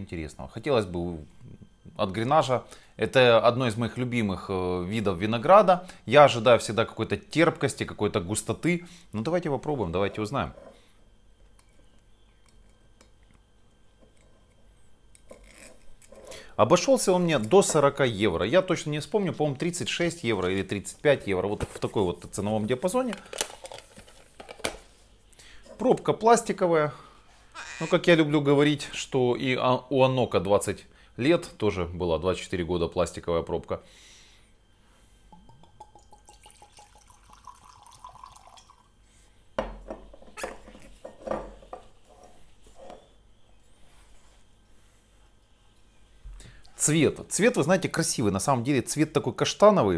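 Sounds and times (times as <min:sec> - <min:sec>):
liquid pouring into glass: 0:35.3 - 0:38.9.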